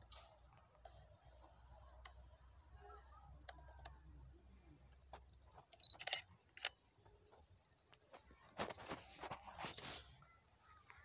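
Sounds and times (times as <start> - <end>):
crickets buzzing: 0.0 - 11.0.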